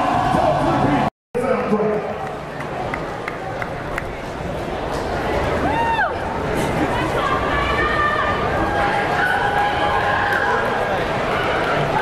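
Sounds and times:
indistinct crowd voices: 0.0 - 12.0.

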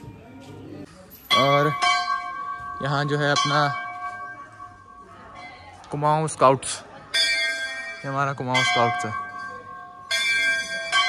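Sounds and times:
brass bell ringing: 1.2 - 5.3, 7.1 - 11.0.

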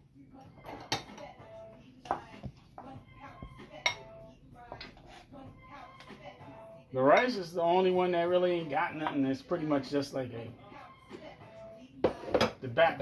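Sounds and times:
faint music: 0.0 - 13.0.

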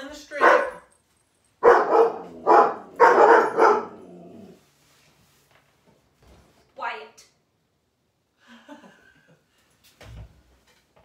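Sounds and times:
dog barking: 0.4 - 0.9, 1.6 - 4.1.

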